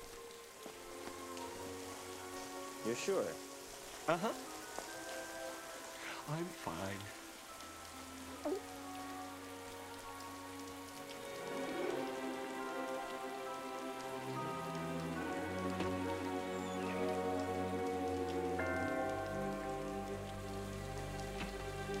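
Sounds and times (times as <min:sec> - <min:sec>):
heavy rain falling: 0:00.0 - 0:22.0
slow film score chords: 0:11.4 - 0:22.0.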